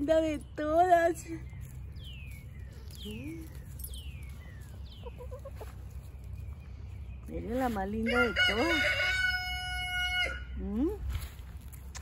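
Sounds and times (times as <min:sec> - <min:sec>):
hens clucking: 0:04.6 - 0:06.6.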